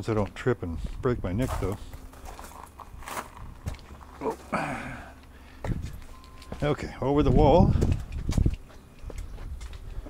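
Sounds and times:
footsteps on concrete: 0:00.0 - 0:10.0.

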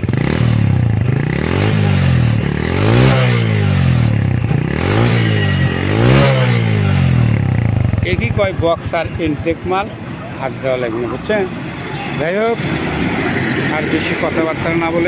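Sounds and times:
motorcycle engine revving: 0:00.0 - 0:10.2.

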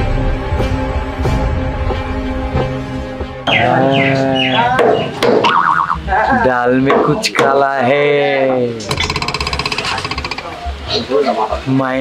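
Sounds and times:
comedy background music: 0:03.4 - 0:07.3.

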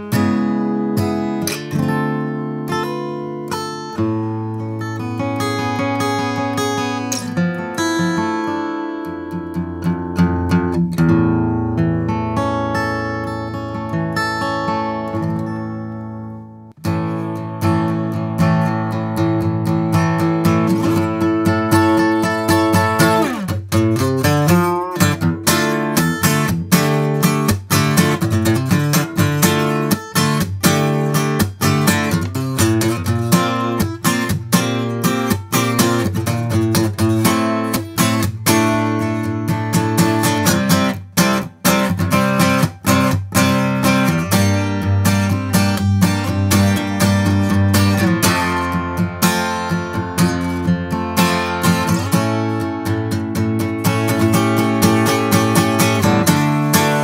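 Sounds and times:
acoustic guitar strumming and picking: 0:00.0 - 0:57.0.

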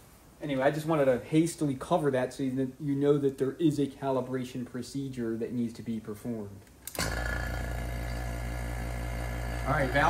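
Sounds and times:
electric vacuum pump running: 0:06.9 - 0:10.0.

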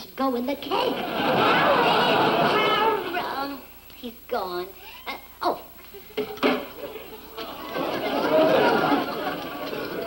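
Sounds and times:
studio audience laughing: 0:00.8 - 0:03.4, 0:05.9 - 0:10.0.

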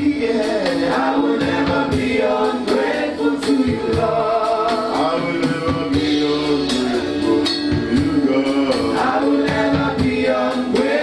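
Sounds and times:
man singing into a microphone: 0:00.0 - 0:11.0.

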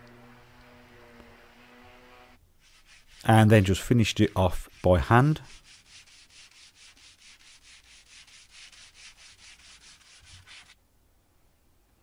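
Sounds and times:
sanding block scratching wood: 0:01.7 - 0:10.8.

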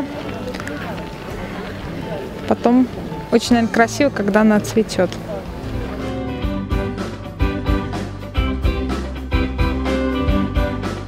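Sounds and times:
people talking outdoors: 0:00.0 - 0:09.8.

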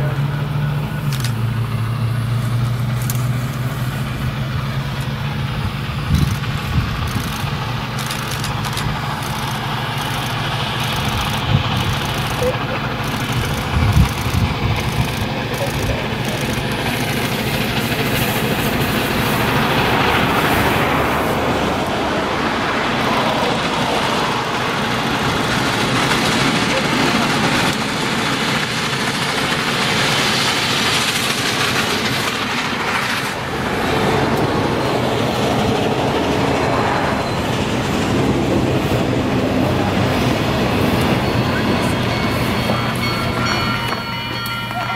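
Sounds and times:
freight cars rolling on rails: 0:00.0 - 0:44.9
steam locomotive rumbling past: 0:00.0 - 0:44.9.

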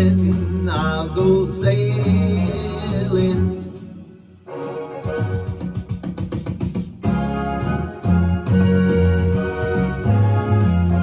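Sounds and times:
person singing: 0:00.0 - 0:04.0.

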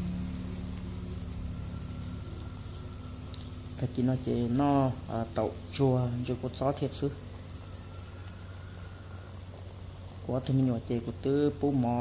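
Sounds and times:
low steady hum: 0:00.0 - 0:12.0
water boiling in a pot: 0:00.0 - 0:12.0.

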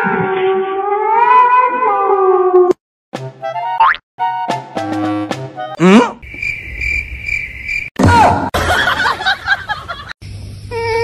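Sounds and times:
crickets chirping: 0:06.2 - 0:08.0.

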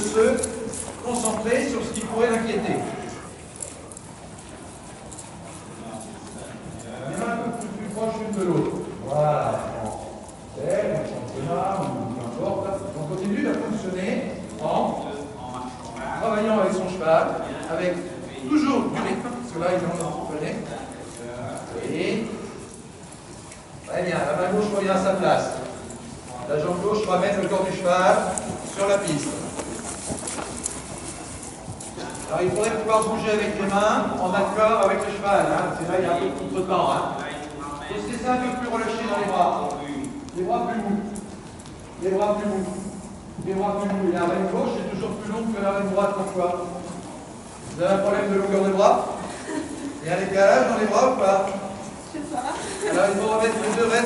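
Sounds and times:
horse hooves on sand: 0:22.2 - 0:49.2.

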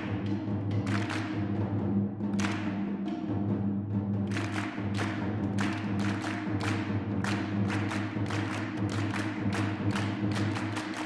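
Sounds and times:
sharp percussion strikes: 0:00.0 - 0:11.0.

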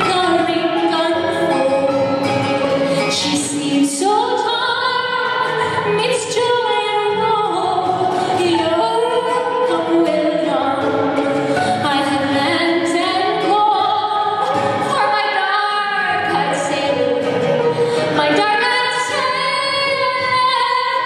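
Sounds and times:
acoustic guitar: 0:00.0 - 0:21.0
violin: 0:00.0 - 0:21.0
woman singing folk song: 0:00.0 - 0:21.0.

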